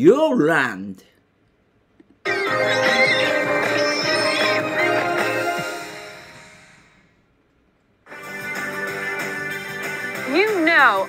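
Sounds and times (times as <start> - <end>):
music: 2.3 - 7.2, 8.0 - 11.0.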